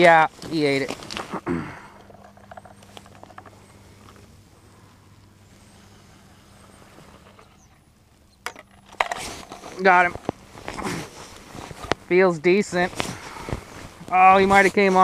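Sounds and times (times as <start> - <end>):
low steady hum: 0.0 - 15.0
person clearing throat: 1.3 - 2.0.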